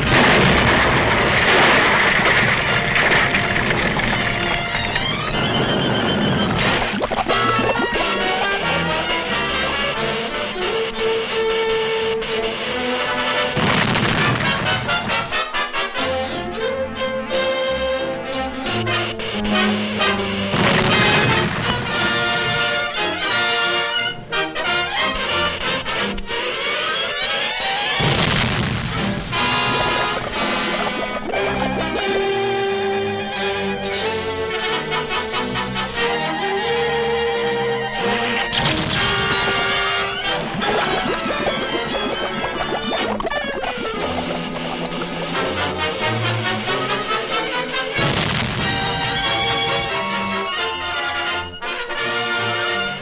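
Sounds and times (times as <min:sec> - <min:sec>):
building crashing and rumbling: 0:00.0 - 0:07.0
orchestral cartoon music: 0:04.3 - 0:10.9, 0:14.1 - 0:28.0, 0:29.2 - 0:53.0.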